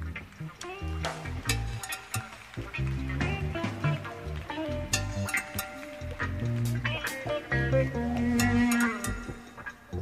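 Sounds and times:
jazz big band playing: 0.7 - 9.8.

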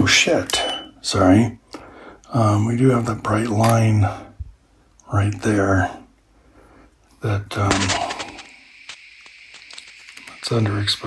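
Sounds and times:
faint steady hiss: 0.0 - 11.0
person speaking: 7.2 - 8.6.

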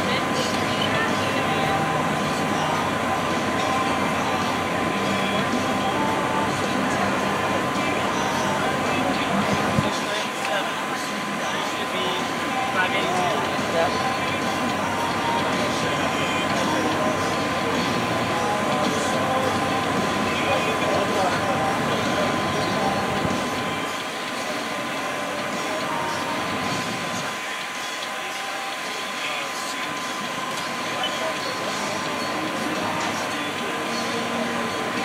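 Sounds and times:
electric blower fan drone: 0.0 - 35.0
faint voices: 0.0 - 35.0.

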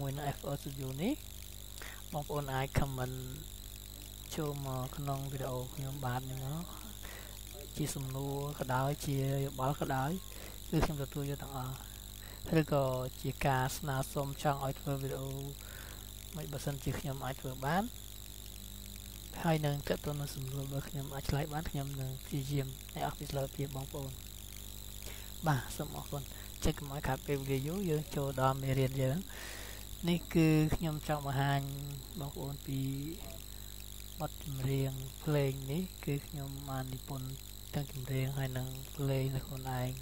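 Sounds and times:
man speaking: 0.0 - 1.2, 1.8 - 3.4, 4.3 - 15.6, 16.4 - 17.9, 19.4 - 24.2, 25.4 - 33.4, 34.2 - 40.0
narrator talking: 0.0 - 1.2, 1.8 - 3.5, 4.1 - 15.7, 16.4 - 17.9, 19.4 - 24.2, 25.1 - 33.5, 34.2 - 40.0
faint low hum: 0.0 - 40.0.

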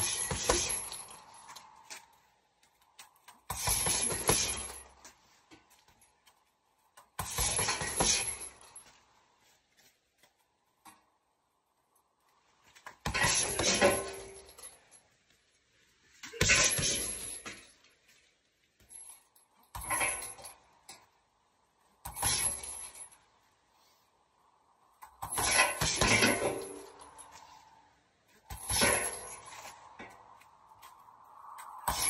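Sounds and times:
chain rattling: 0.0 - 9.9, 11.8 - 15.6, 16.2 - 23.5, 25.0 - 32.0.

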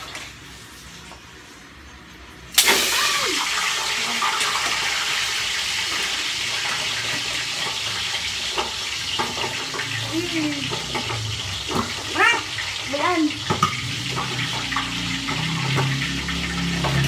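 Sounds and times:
meat sizzling in hot oil: 2.4 - 17.0.

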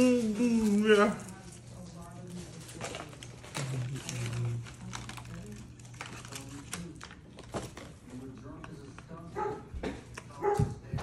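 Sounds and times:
dog barking: 9.4 - 9.7, 10.4 - 10.8.

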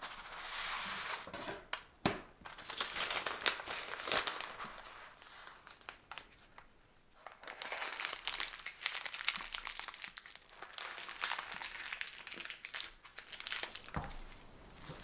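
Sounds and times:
baking paper crinkling: 2.4 - 15.0.

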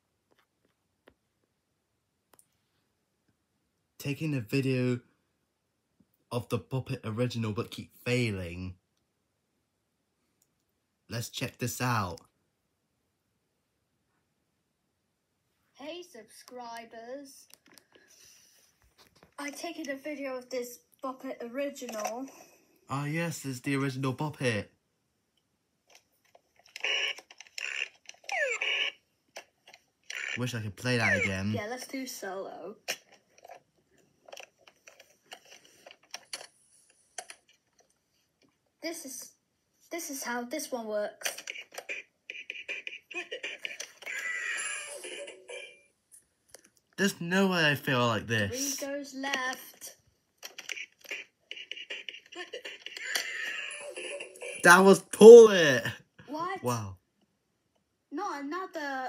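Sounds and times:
electronic toy sound effects: 26.8 - 29.0, 30.1 - 31.6.

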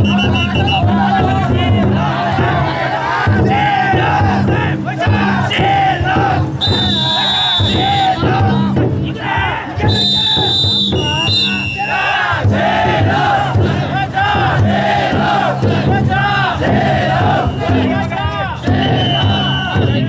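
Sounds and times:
shrill whistle tone: 0.0 - 0.8, 6.6 - 8.1, 9.8 - 12.2, 17.4 - 17.8, 18.7 - 20.0
crowd shouting rhythmic chants: 0.0 - 20.0.

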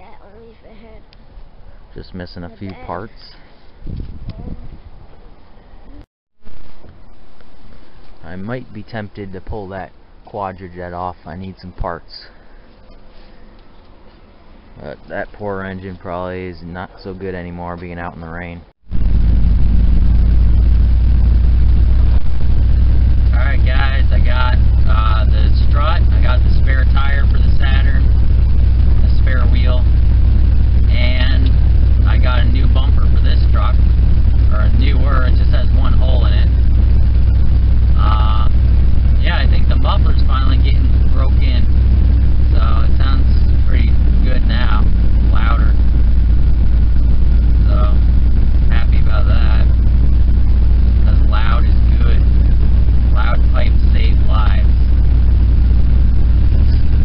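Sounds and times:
engine and road noise in cab: 18.9 - 57.0.

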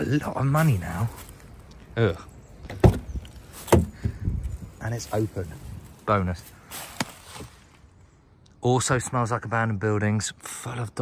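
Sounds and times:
car door knocks swinging open: 2.7 - 4.1.

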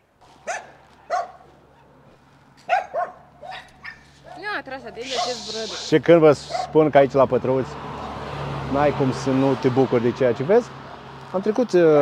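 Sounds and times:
dog barking: 0.4 - 1.9, 2.6 - 5.5, 6.4 - 6.8.

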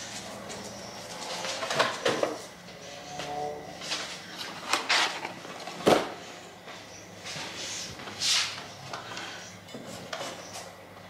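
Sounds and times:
boxes knocking and clattering: 0.6 - 2.5, 4.5 - 6.2.

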